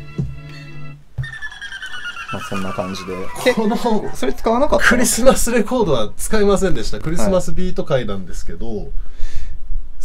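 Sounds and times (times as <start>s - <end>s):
high ringing tone falling in pitch: 1.2s - 4.6s.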